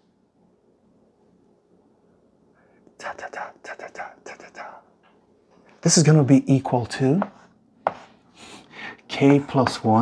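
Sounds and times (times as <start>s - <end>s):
chalk scratching on blackboard: 7.2s - 8.2s
chalk tapping on blackboard: 7.2s - 8.2s.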